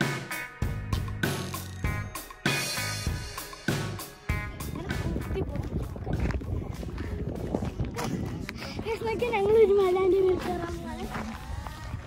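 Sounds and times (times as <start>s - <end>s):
children's voices: 4.4s - 6.4s, 7.9s - 12.0s
wind buffeting microphone: 4.4s - 12.0s.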